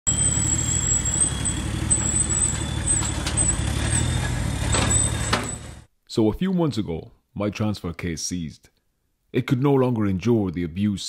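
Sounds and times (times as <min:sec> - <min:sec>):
diesel engine running: 0:00.1 - 0:05.9
thin high whine: 0:00.1 - 0:05.9.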